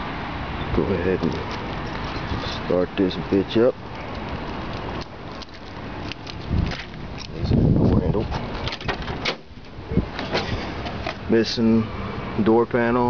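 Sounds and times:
car door creaking: 5.4s - 11.2s.

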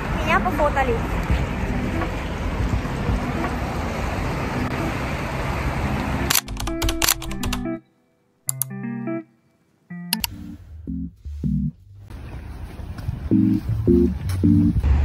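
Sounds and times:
street noise: 0.0s - 7.7s, 10.1s - 15.0s
background music: 0.0s - 7.9s, 8.5s - 12.1s, 13.3s - 15.0s.

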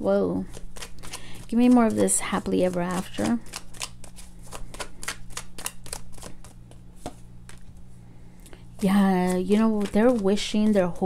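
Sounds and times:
cards shuffled and flicked: 0.5s - 7.8s, 8.8s - 10.5s.

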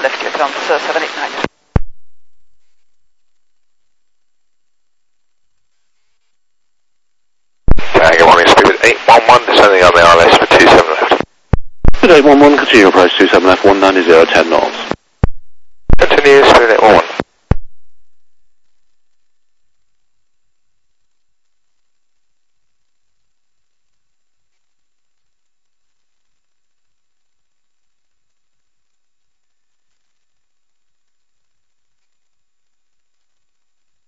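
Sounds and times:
radio voice transmission: 0.0s - 1.5s, 7.7s - 11.3s, 12.0s - 15.0s, 16.0s - 17.2s
radio hiss: 0.0s - 1.9s, 7.7s - 17.6s.

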